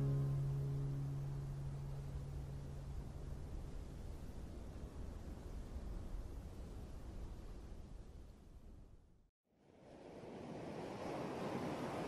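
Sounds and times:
ocean surf rushing: 0:09.8 - 0:12.0.

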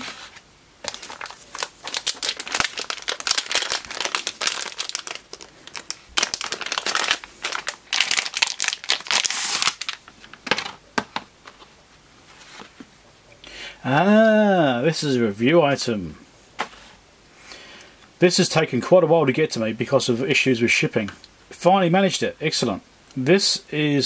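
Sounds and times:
plastic bag crinkling: 0:00.8 - 0:10.7.

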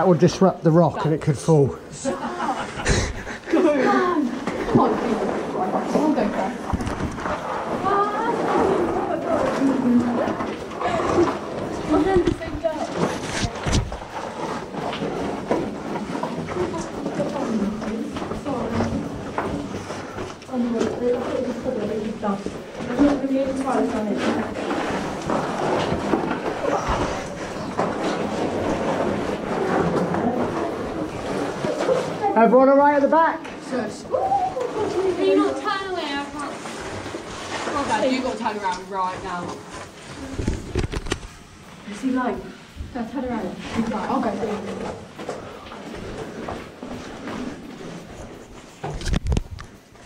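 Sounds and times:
people talking indistinctly: 0:00.0 - 0:40.9, 0:41.6 - 0:46.1.

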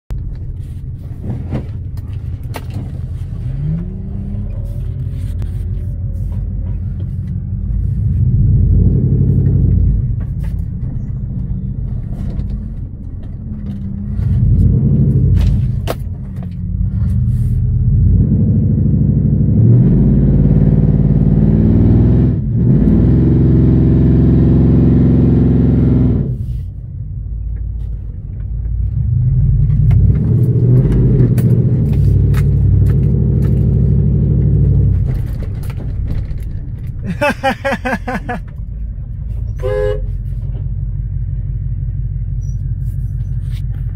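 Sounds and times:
vehicle engine revving: 0:02.8 - 0:15.9, 0:16.7 - 0:26.7, 0:28.8 - 0:38.4.

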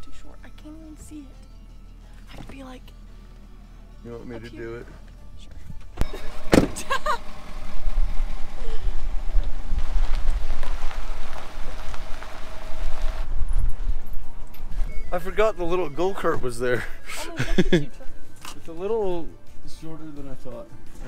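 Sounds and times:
truck engine low rumble: 0:00.0 - 0:18.4.

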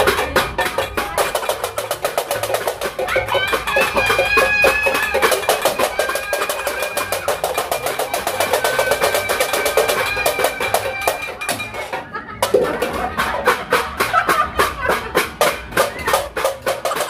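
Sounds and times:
metal pots beaten together: 0:00.0 - 0:17.0.

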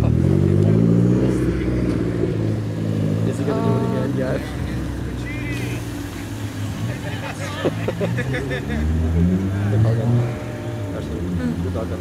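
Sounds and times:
car engine revving: 0:00.0 - 0:12.0.

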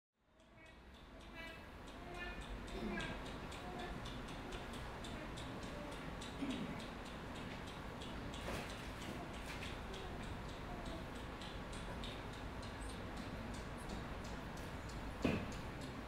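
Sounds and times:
steady ticking: 0:00.3 - 0:16.0.

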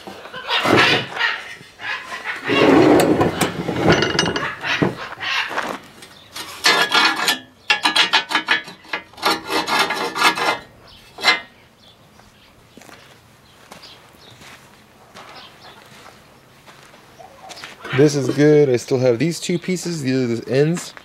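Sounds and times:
metal damper scraping: 0:00.0 - 0:11.5
cast iron parts rubbing: 0:00.0 - 0:11.6.

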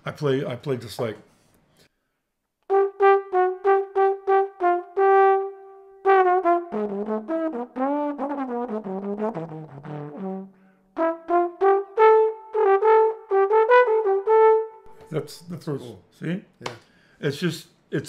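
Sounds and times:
solo trombone playing jazz: 0:02.7 - 0:15.5.

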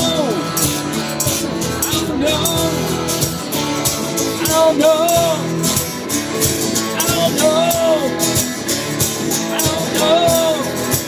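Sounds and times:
man singing: 0:00.0 - 0:05.9, 0:06.6 - 0:08.6, 0:09.2 - 0:11.0
rock band on acoustic guitars: 0:00.0 - 0:11.0.

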